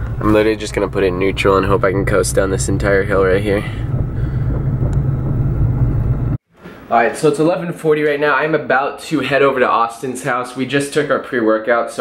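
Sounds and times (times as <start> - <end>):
car interior road and engine rumble: 0.0 - 6.4.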